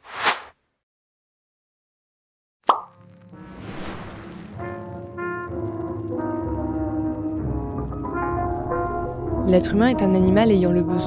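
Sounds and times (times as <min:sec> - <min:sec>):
music with held notes: 0:04.9 - 0:11.0.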